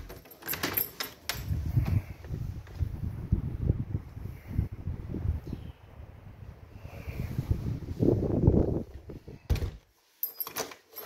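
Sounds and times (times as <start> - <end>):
door handle and latch rattling: 0.0 - 2.0
wind buffeting microphone: 1.3 - 9.7.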